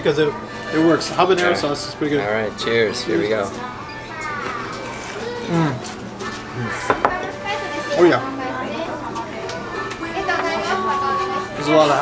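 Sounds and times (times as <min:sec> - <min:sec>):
ceramic plate knocking on wooden table: 0:06.9 - 0:07.3.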